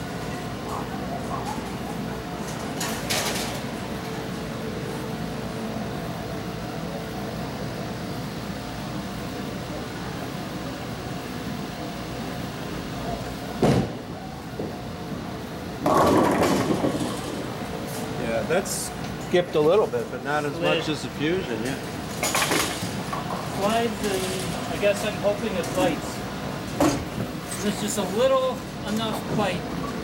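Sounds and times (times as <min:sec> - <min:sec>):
bowling lane machinery rumble: 0:00.0 - 0:30.0
bowling ball hitting pins: 0:15.8 - 0:17.4.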